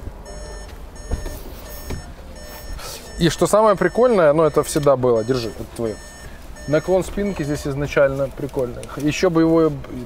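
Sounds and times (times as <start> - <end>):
short electronic beeps: 0.2 - 7.5.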